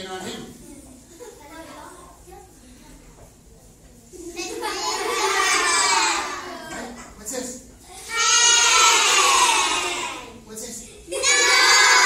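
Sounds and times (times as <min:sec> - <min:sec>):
children calling out in chorus: 0:04.8 - 0:06.8, 0:08.0 - 0:10.4, 0:11.1 - 0:12.0.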